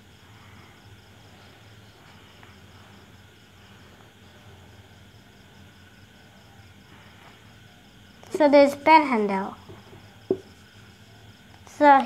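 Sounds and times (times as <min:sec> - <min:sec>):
low steady hum: 0:00.0 - 0:11.8
insect chirping: 0:00.0 - 0:12.0.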